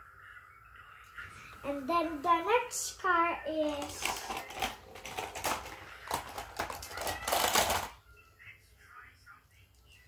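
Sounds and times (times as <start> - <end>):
plastic toy cars clicking: 3.6 - 8.0.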